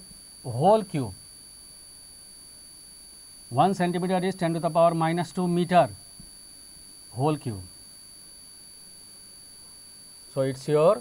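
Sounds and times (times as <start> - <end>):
faint high-pitched electronic whine: 0.0 - 11.0.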